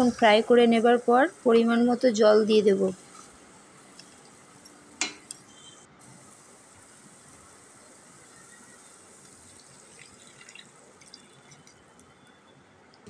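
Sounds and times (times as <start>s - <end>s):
water poured into hot wok: 6.1s - 11.8s.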